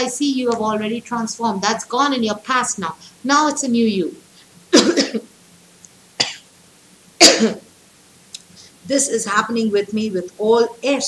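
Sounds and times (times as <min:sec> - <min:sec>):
woman coughing: 0:04.7 - 0:05.3, 0:06.2 - 0:06.5, 0:07.2 - 0:07.7.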